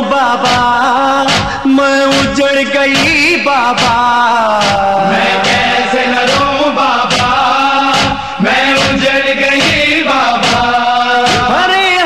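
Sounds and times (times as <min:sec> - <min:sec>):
man chanting a lament: 0:00.0 - 0:12.0
regular short beats: 0:00.2 - 0:12.0.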